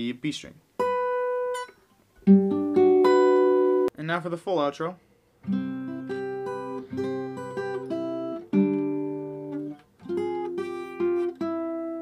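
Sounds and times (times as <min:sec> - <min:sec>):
acoustic guitar riff: 0:00.8 - 0:04.0, 0:05.4 - 0:12.0.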